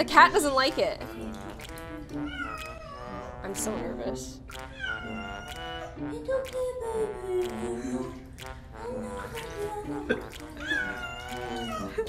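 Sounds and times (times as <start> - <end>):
cat meowing: 2.2 - 3.3, 4.6 - 5.9, 10.6 - 12.0.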